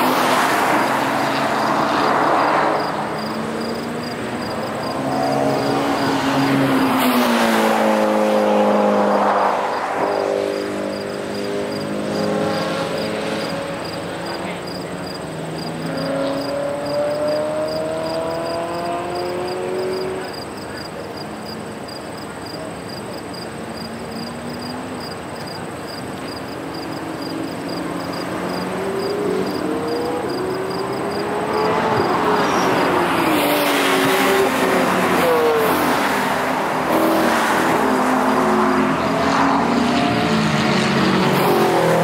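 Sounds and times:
car accelerating: 0.0 - 42.0
car engines revving: 0.0 - 42.0.

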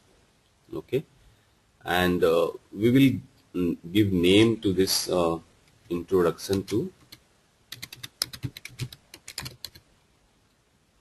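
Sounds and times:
computer keyboard typing: 6.5 - 9.8.

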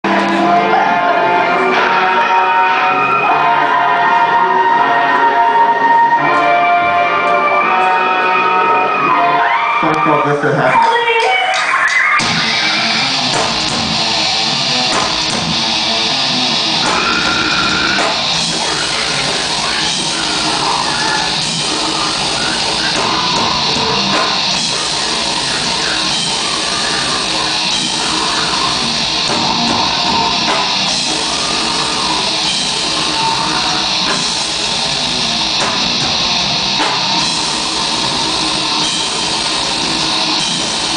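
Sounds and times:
live band sustained chords: 0.0 - 10.0, 12.2 - 40.9
electric guitar: 12.2 - 40.9.

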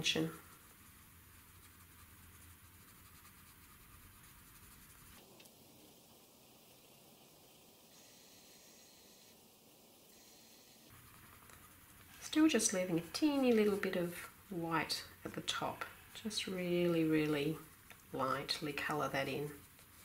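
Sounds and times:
pencil scratching on paper: 0.4 - 5.2, 18.5 - 20.0.

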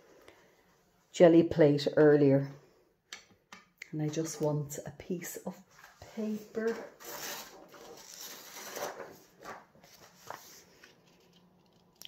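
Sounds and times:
paper rustling: 5.6 - 11.8
short paper scrapes: 6.8 - 9.2.

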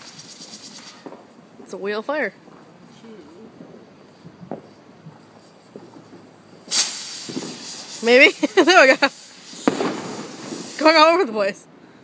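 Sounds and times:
firework fuse catching: 0.0 - 2.7, 4.1 - 11.6
firework fountain hissing: 0.0 - 12.0.

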